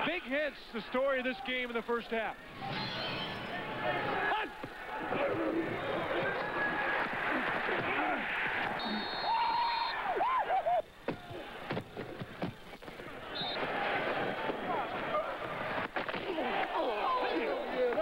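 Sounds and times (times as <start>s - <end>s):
players shouting: 0.0s - 18.0s
stadium crowd: 0.0s - 18.0s
referee's whistle: 2.6s - 4.1s, 8.6s - 10.2s, 13.3s - 13.8s.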